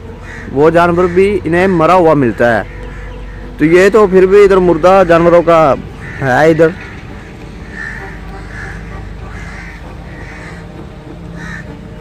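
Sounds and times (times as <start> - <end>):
crows cawing: 0.0 - 12.0.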